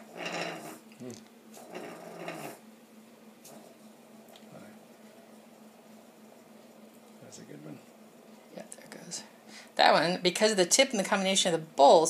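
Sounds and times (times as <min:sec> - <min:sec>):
spindle spinning in a bowl: 0:00.0 - 0:00.9, 0:01.5 - 0:02.6.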